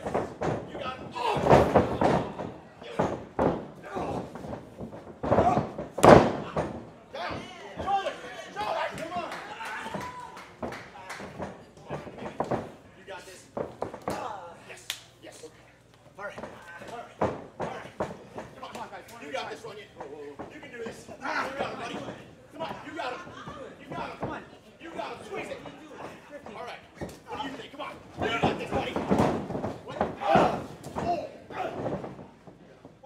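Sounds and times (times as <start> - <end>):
bodies slamming onto ring mat: 0.0 - 6.9.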